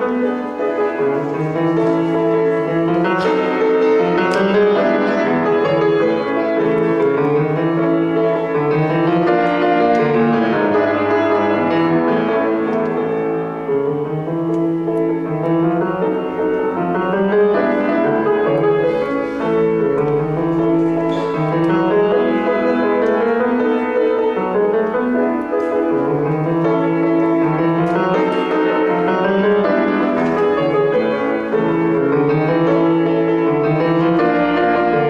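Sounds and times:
grand piano tango: 0.0s - 35.0s.

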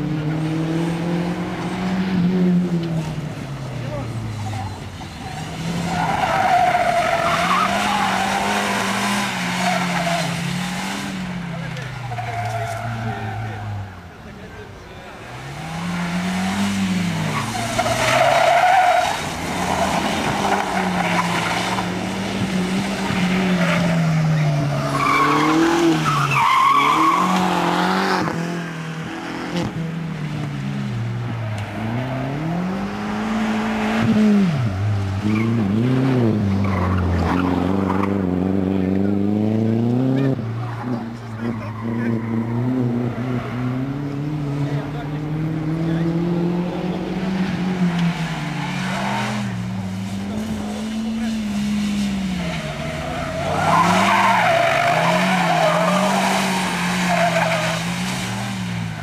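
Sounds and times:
car engine revving: 0.0s - 59.0s
tyres squealing: 3.9s - 10.4s, 17.0s - 22.0s, 23.0s - 27.7s, 52.2s - 58.4s.

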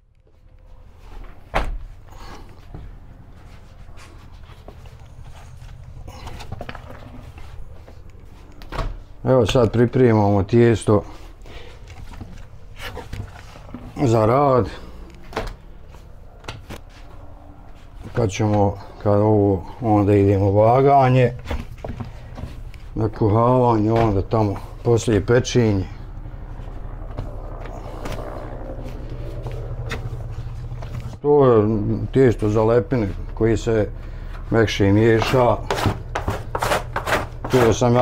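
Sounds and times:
low mechanical hum: 0.0s - 38.0s.

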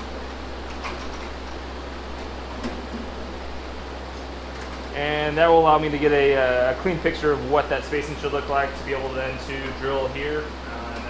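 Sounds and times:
fan-like hum: 0.0s - 11.0s.

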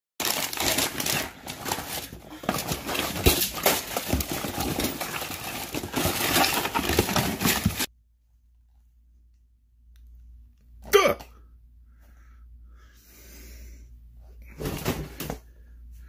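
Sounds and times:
packaging rustling and crinkling: 0.2s - 7.9s.

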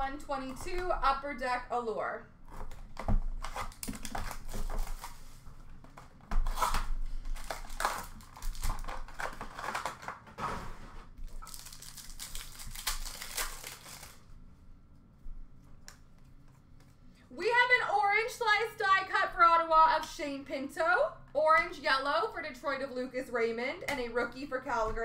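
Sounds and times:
plastic wrapping crinkling and tearing: 2.5s - 10.4s, 11.0s - 14.3s.

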